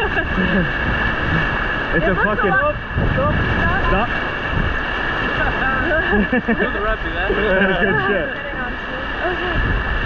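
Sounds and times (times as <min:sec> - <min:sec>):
river rapids rushing: 0:00.0 - 0:10.0
wind on microphone: 0:00.0 - 0:10.0.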